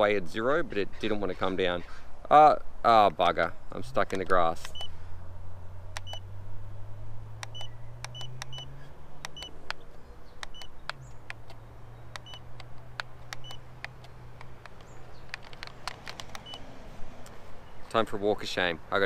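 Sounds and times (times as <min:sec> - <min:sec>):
button clicks: 0:06.0 - 0:06.2, 0:07.4 - 0:09.8, 0:10.4 - 0:16.6.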